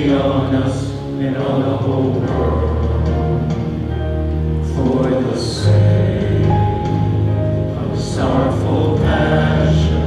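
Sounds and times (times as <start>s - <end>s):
men singing chant-like melody: 0.0s - 3.6s, 4.7s - 7.2s, 7.8s - 10.0s.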